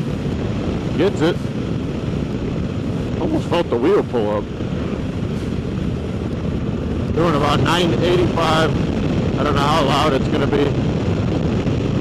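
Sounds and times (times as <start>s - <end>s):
motorcycle engine running: 0.0s - 12.0s
wind rushing over microphone: 0.0s - 12.0s.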